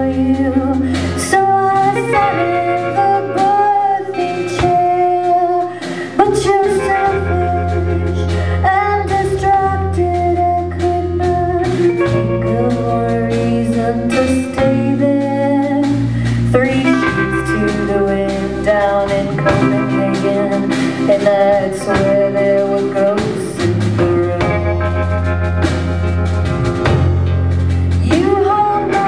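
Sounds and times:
woman singing: 0:00.0 - 0:25.4, 0:27.9 - 0:29.0
acoustic and electric guitars: 0:00.0 - 0:29.0
bass guitar: 0:00.0 - 0:29.0
drums: 0:00.0 - 0:29.0.

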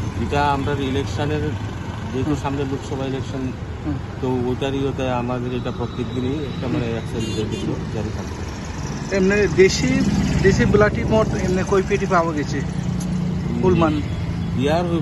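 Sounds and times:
person speaking: 0:05.9 - 0:08.3, 0:13.4 - 0:14.1
car engine idling: 0:06.6 - 0:14.1.

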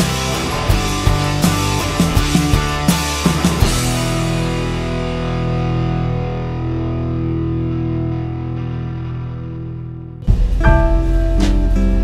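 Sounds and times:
background music held chord: 0:10.2 - 0:12.0.

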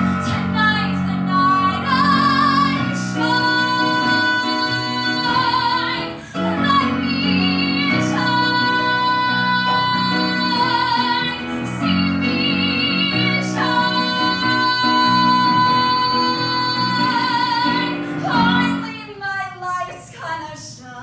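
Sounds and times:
piano accompaniment: 0:00.0 - 0:19.1.

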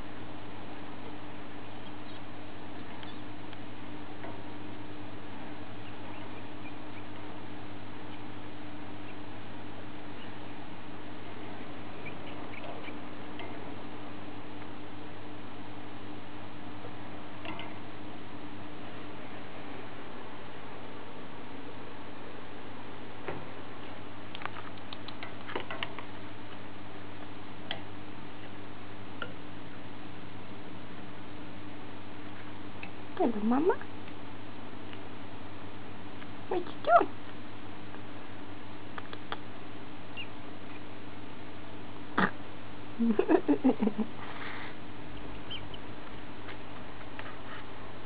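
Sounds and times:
low hum: 0:00.0 - 0:48.0
steady background hiss: 0:00.0 - 0:48.0
rats squeaking: 0:01.7 - 0:02.3, 0:02.9 - 0:03.3, 0:05.8 - 0:07.2, 0:11.9 - 0:13.1, 0:40.1 - 0:40.9, 0:45.2 - 0:45.9
small sharp clicks: 0:24.3 - 0:26.1, 0:38.9 - 0:39.5.

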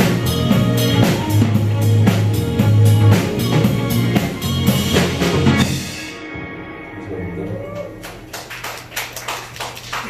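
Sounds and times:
audience clapping: 0:07.4 - 0:10.0.

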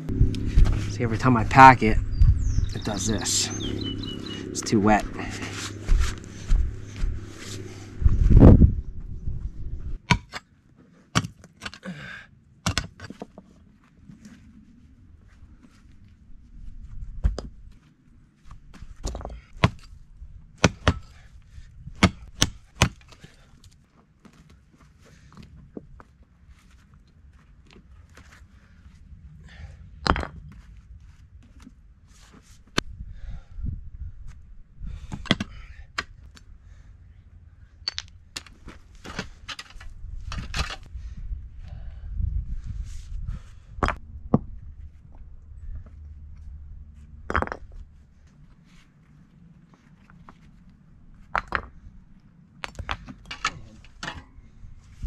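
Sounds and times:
mattock chopping rocky soil: 0:20.6 - 0:21.2, 0:22.0 - 0:23.2.

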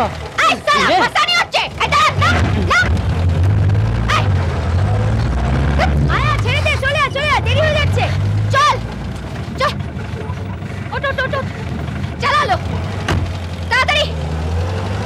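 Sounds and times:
person shouting: 0:00.4 - 0:03.0
car engine driving past: 0:01.8 - 0:15.0.

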